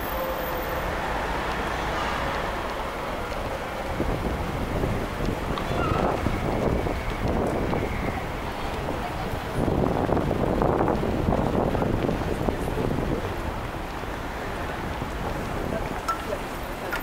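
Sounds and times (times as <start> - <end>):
busy city street noise: 0.0 - 17.0
wind rumbling on microphone: 0.0 - 17.0.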